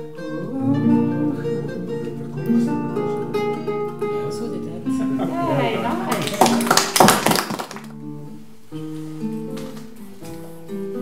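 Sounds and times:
acoustic guitar strummed: 0:00.0 - 0:06.6.

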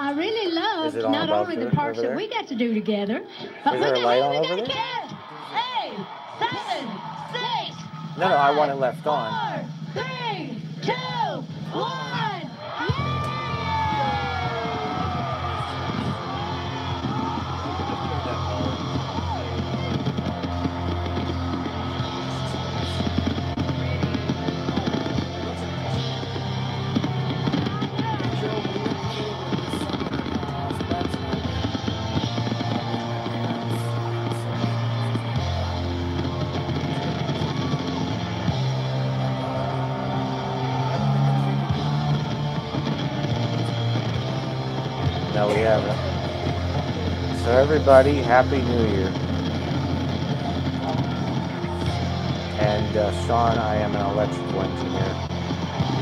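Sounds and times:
voices: 0:00.0 - 0:37.8, 0:43.6 - 0:49.9, 0:51.3 - 0:55.3
music from television speaker: 0:12.7 - 0:56.0.

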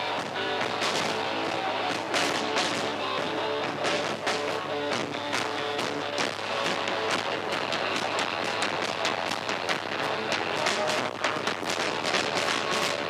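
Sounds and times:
bass guitar: 0:00.0 - 0:13.0
electric guitar: 0:00.0 - 0:13.0.

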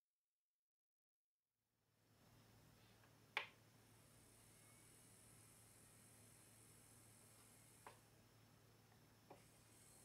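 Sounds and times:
faint low hum: 0:01.9 - 0:10.0.

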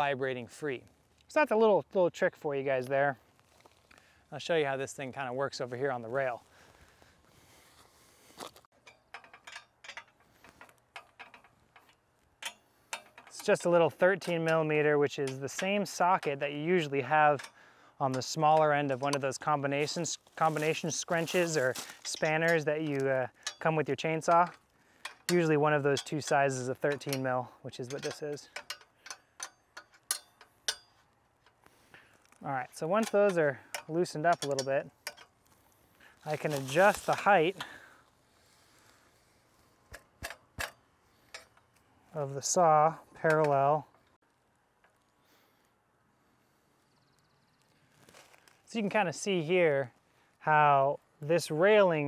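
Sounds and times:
light metallic clinks: 0:08.8 - 0:19.2, 0:21.4 - 0:31.6.

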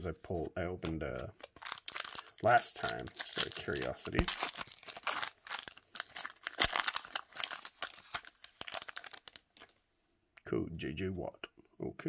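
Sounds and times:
foil wrapper tearing and crinkling: 0:01.4 - 0:09.7.

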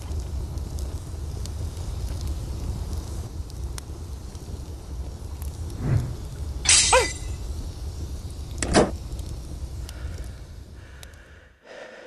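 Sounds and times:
low rumble: 0:05.5 - 0:06.6.

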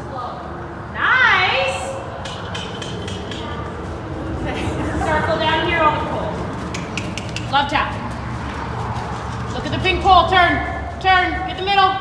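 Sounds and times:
steady low rumble: 0:01.6 - 0:12.0.

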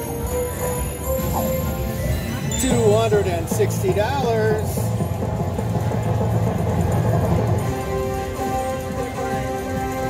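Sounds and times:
slot machine bonus music: 0:00.0 - 0:05.1.

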